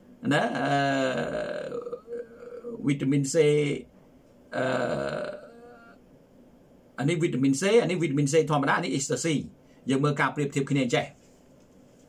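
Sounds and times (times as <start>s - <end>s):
man holding long vowel: 0.2s - 3.8s, 4.5s - 6.0s.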